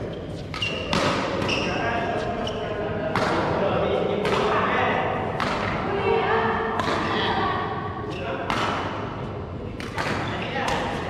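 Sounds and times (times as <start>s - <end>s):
shoes squeaking on court floor: 0.0s - 2.8s
rackets hitting shuttlecock: 0.4s - 1.8s, 3.1s - 3.6s, 4.2s - 4.6s, 5.3s - 5.9s, 6.7s - 7.2s, 8.4s - 9.0s, 9.7s - 11.0s.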